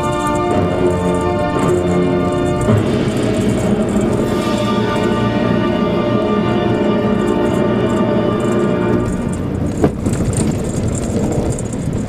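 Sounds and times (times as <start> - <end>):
background music: 0.0 - 11.0
tyres on snowy dirt road: 0.0 - 12.0.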